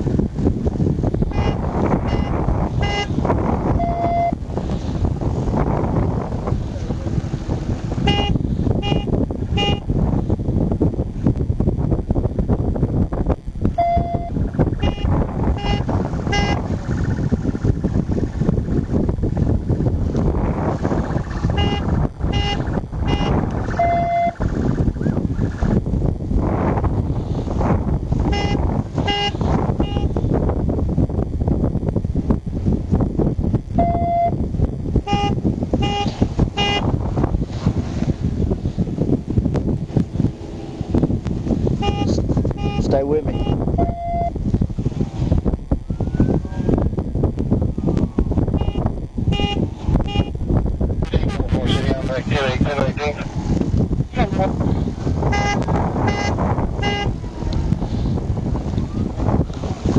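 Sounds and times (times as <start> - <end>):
wind buffeting microphone: 0.0 - 59.9
longer lower beep: 3.7 - 4.4, 13.7 - 16.6, 21.6 - 24.4, 33.8 - 34.4, 41.8 - 44.4, 48.6 - 50.4.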